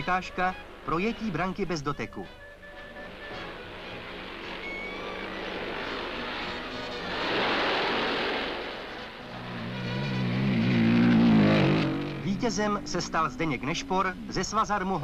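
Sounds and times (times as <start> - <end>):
background music: 0.0 - 7.8
motorcycle revving past: 2.8 - 14.5
motorcycle engines running: 3.1 - 8.1, 9.0 - 15.0.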